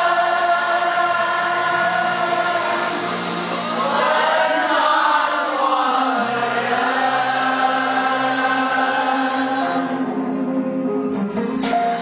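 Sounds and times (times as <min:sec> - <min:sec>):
group singing in unison: 0:00.0 - 0:10.3.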